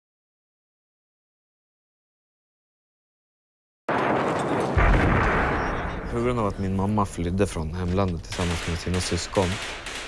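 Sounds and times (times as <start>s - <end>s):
heavy boom: 3.9s - 6.5s
gunfire and artillery rumble: 3.9s - 10.0s.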